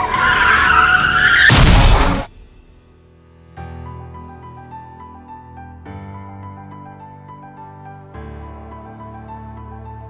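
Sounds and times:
car tyres screeching: 0:00.0 - 0:02.1
loud crash: 0:01.1 - 0:02.8.

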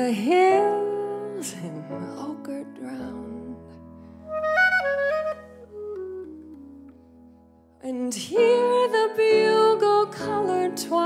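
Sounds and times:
clarinet playing: 0:04.2 - 0:07.1.

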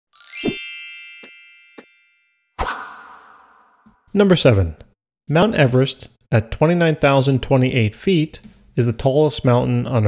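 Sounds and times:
bright chime: 0:00.1 - 0:02.5.

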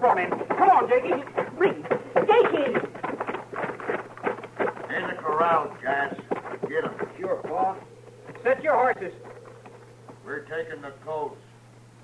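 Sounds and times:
horses' hoofbeats: 0:00.0 - 0:11.4.

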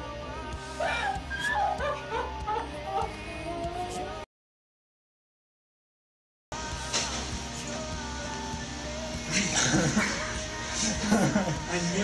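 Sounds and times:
background music: 0:00.0 - 0:04.3, 0:06.5 - 0:12.0.

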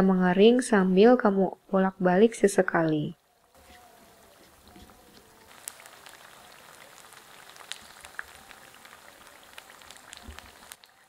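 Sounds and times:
fritters sizzling in hot oil: 0:03.6 - 0:11.0.

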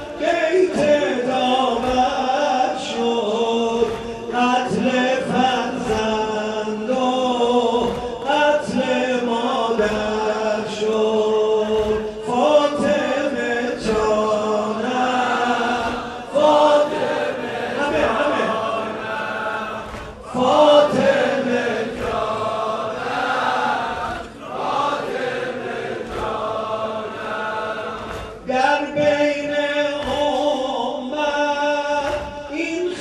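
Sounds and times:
men chanting a lament: 0:00.0 - 0:33.0.

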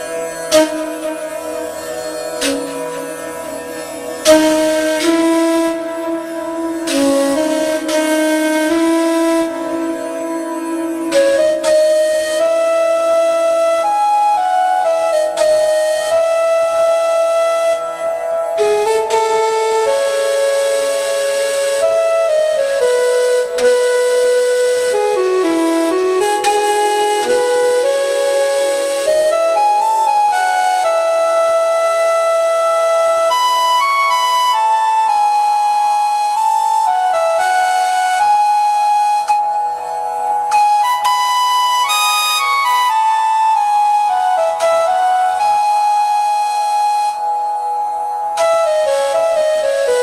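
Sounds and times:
flute playing slow melody: 0:00.0 - 0:50.0.

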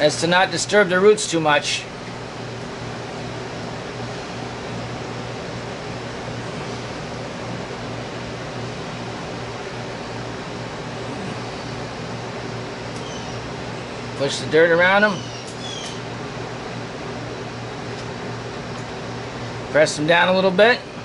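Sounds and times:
machine hum: 0:00.0 - 0:21.0.

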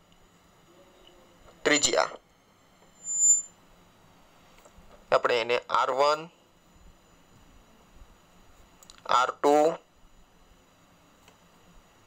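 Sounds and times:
high-pitched squeal: 0:02.9 - 0:03.6.

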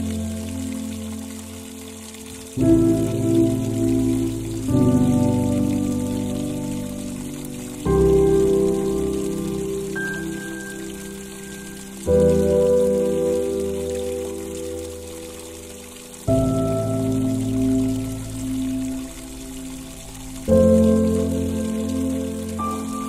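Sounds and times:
soft piano chords: 0:00.0 - 0:23.0
soft rain hiss: 0:00.0 - 0:23.0.

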